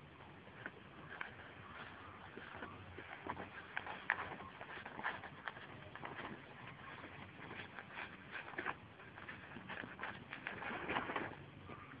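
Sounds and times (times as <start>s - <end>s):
horse chewing: 0.0s - 11.9s
feed bag crinkling: 0.0s - 12.0s.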